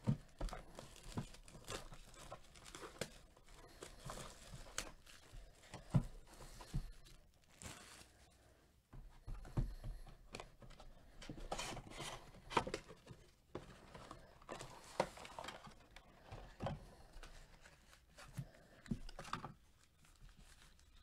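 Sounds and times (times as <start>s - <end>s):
cardboard and foil crinkling: 0.0s - 8.4s, 10.6s - 21.0s.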